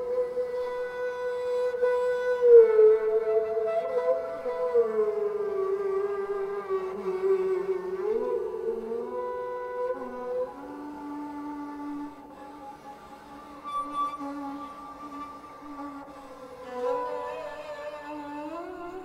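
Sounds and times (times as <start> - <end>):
bowed string solo: 0.0 - 19.0.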